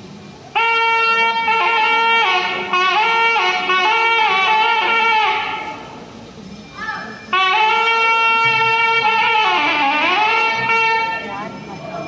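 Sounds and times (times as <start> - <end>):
reed wind instrument notes: 0.0 - 12.0.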